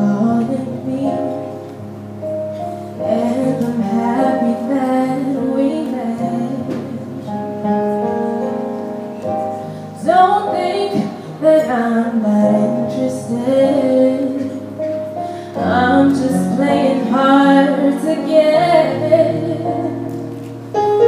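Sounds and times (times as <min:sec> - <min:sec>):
woman singing: 0:00.0 - 0:01.6, 0:03.0 - 0:07.3, 0:10.0 - 0:20.3.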